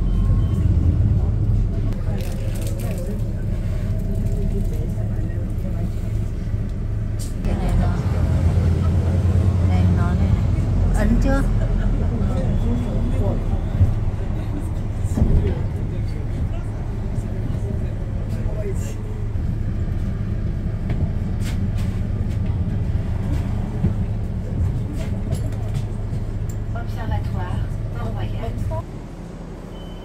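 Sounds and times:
traffic rumble: 0.0 - 30.0
passers-by talking: 0.6 - 21.1, 22.2 - 28.9.

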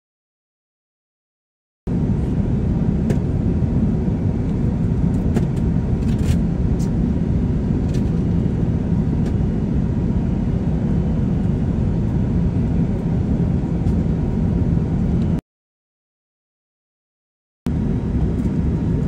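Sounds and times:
aircraft cabin engine rumble: 1.9 - 15.4, 17.7 - 19.0.

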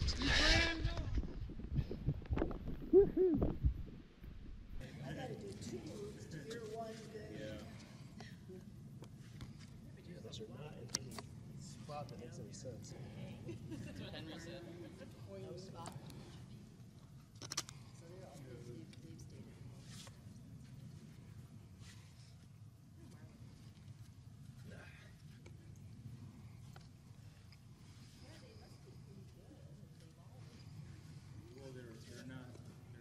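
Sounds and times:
steady low rumble: 0.0 - 6.4.

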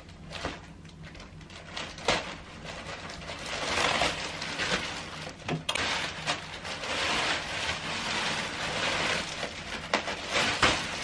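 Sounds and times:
plastic packaging rustling: 0.0 - 11.0
sharp plastic crackles: 0.0 - 11.0.

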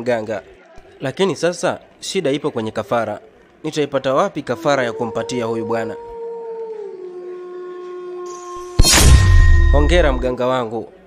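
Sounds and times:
eerie howl-like tone: 4.4 - 10.4.

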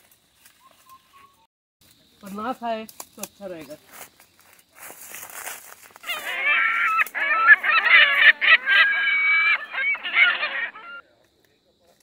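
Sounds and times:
honking animal calls: 6.0 - 11.0.

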